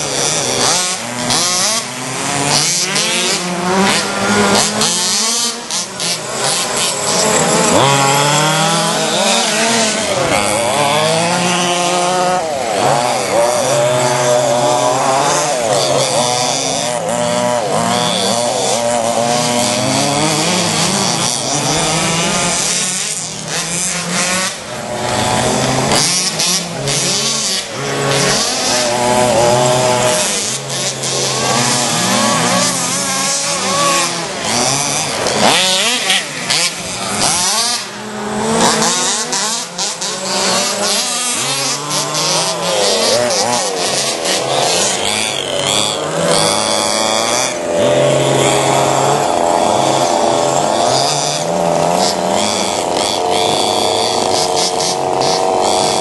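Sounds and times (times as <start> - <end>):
small two-stroke engines buzzing: 0.0 - 56.0.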